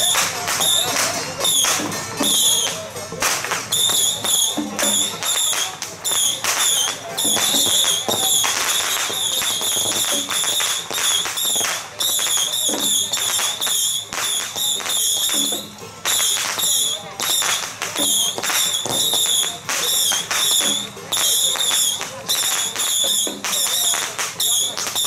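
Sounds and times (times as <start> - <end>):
firecrackers crackling: 0.0 - 25.0.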